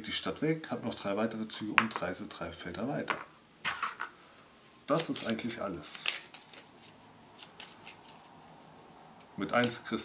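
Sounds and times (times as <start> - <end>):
faint card rustles: 4.9 - 8.3.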